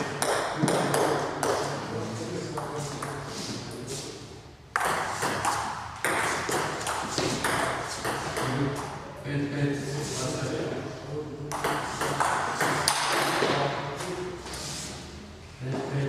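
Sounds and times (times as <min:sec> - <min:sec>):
table tennis ball pings: 0:04.7 - 0:08.6.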